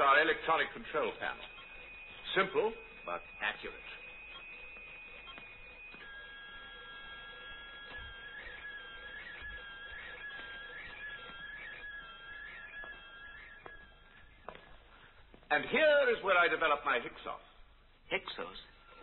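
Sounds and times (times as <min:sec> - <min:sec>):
warbling electronic chirp: 0:00.0 - 0:14.5
high electronic tones: 0:00.0 - 0:16.8.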